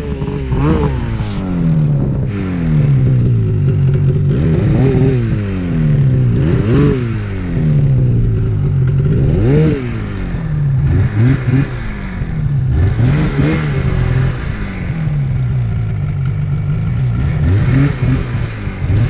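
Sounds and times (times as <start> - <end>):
snowmobile engine revving: 0.0 - 19.0.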